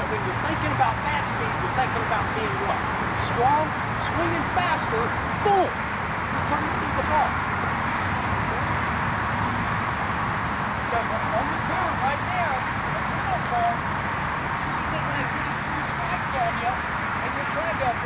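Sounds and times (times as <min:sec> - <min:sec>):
distant outdoor voices: 0:00.0 - 0:18.0.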